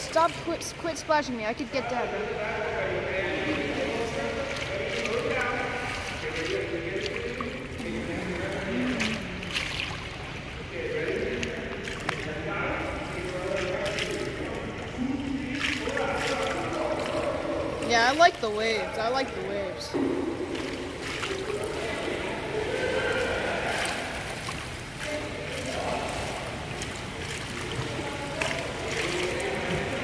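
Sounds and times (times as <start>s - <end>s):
water splashing in pool: 0.0s - 30.0s
indistinct voices: 2.9s - 9.9s
short sharp splashes: 3.6s - 30.0s.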